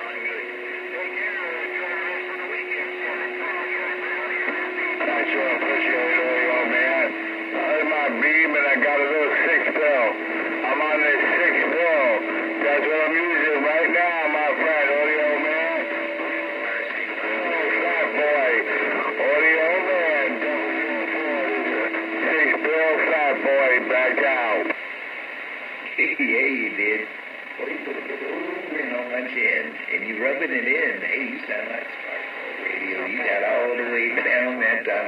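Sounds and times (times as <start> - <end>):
garbled radio voices: 0.0 - 35.0
steady low tone: 0.3 - 23.9.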